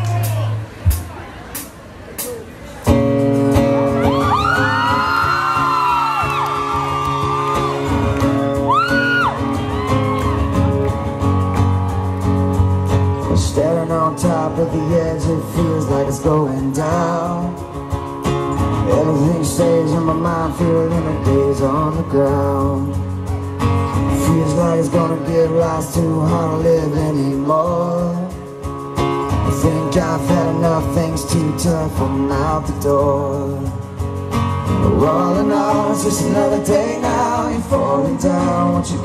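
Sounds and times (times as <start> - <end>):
live rock band playing: 0.0 - 39.0
audience whooping: 3.8 - 12.5.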